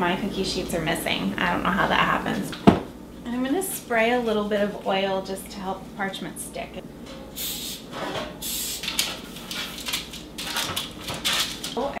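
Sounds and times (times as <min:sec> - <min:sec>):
spray can hissing: 0:07.4 - 0:07.8, 0:08.4 - 0:08.9.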